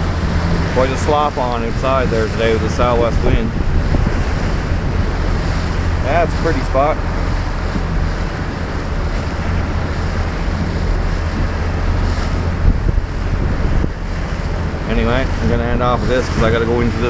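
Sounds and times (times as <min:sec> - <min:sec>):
boat engine drone: 0:00.0 - 0:17.0
choppy water: 0:00.0 - 0:17.0
wind buffeting microphone: 0:00.0 - 0:17.0.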